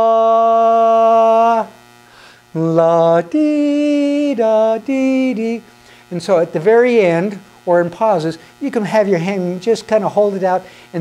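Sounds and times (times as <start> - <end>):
man singing: 0.0 - 1.8, 2.5 - 11.0.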